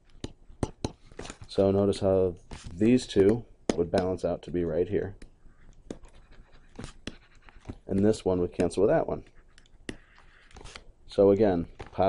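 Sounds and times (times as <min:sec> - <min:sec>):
man speaking: 0:01.5 - 0:05.2, 0:07.8 - 0:09.3, 0:11.1 - 0:12.0.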